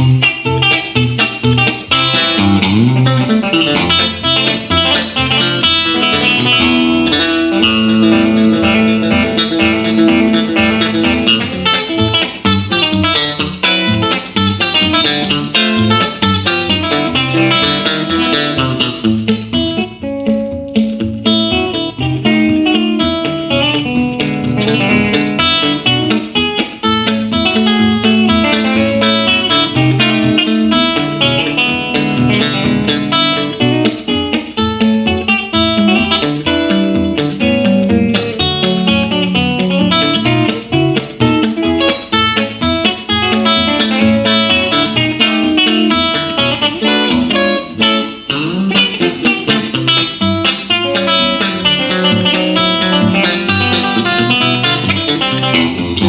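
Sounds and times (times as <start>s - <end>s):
electric guitar melody: 0.0s - 56.0s
low bass notes: 1.4s - 12.1s.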